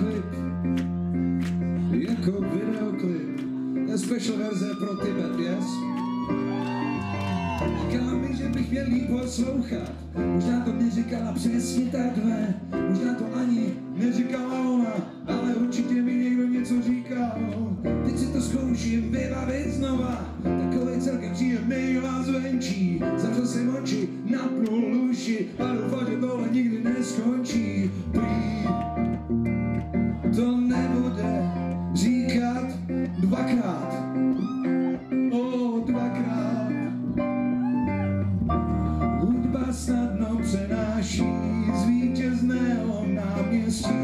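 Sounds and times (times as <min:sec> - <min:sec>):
man singing: 0:00.0 - 0:00.8, 0:01.8 - 0:06.0, 0:07.3 - 0:29.2, 0:30.2 - 0:37.3, 0:38.6 - 0:44.0
electric bass guitar: 0:00.0 - 0:03.6, 0:05.9 - 0:14.5, 0:15.2 - 0:44.0
live band playing: 0:26.9 - 0:44.0
long low bass notes: 0:27.5 - 0:33.4, 0:35.9 - 0:44.0.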